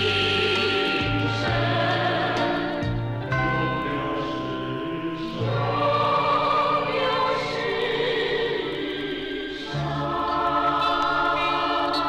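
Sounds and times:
choir singing: 0.0 - 12.0
orchestral film music chords: 0.0 - 12.0.

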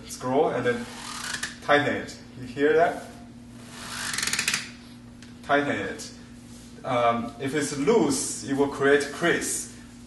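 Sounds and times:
silk scroll crackling rasp: 0.8 - 1.6, 3.6 - 4.7.

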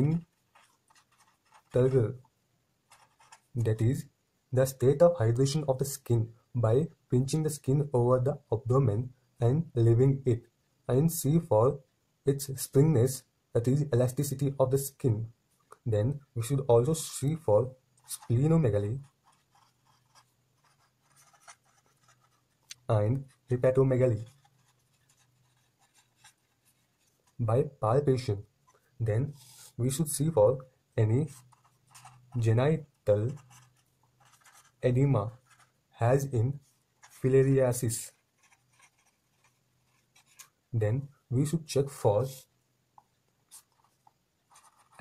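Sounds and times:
marker scratching on paper: 0.1 - 1.9, 2.9 - 3.6, 18.0 - 27.4, 31.2 - 35.7, 37.0 - 40.6, 43.5 - 45.0.

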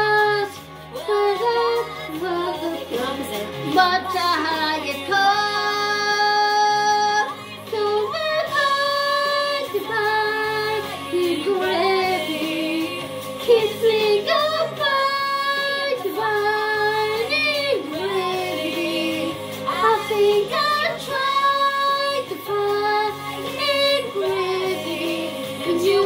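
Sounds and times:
low musical backing: 0.0 - 26.0.

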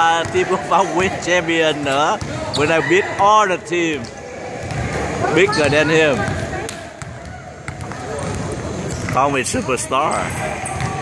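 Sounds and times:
gym background noise: 0.0 - 11.0
basketball bouncing on wooden floor: 7.0 - 9.2.

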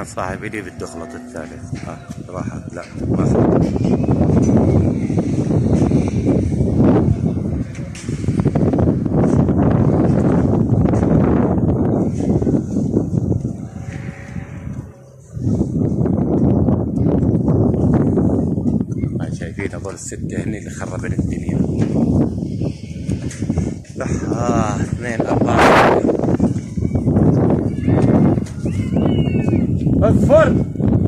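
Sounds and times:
wind buffeting microphone: 0.0 - 31.0.

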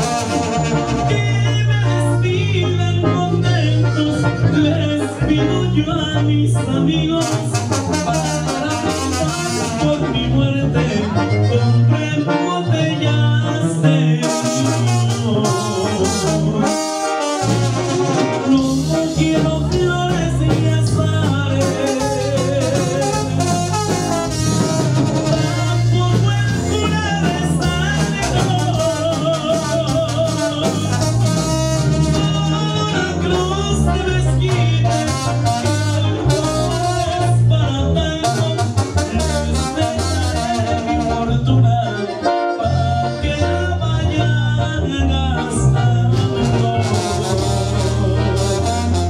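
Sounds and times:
electric guitar: 0.0 - 49.0
latin dance band playing: 0.0 - 49.0.

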